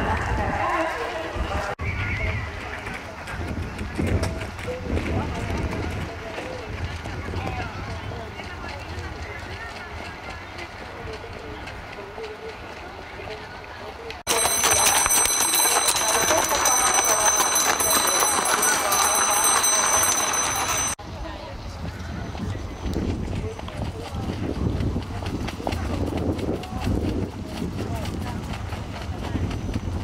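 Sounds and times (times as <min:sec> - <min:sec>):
people's voices: 0:00.0 - 0:30.0
hoofbeats on gravel: 0:02.2 - 0:21.0, 0:22.4 - 0:30.0
horse hooves clattering: 0:02.5 - 0:21.0
carriage wheels on gravel: 0:14.3 - 0:21.0.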